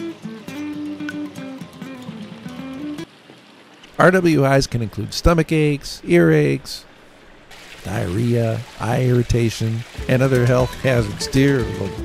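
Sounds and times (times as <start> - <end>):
picked guitar melody: 0.0 - 3.1, 10.4 - 12.0.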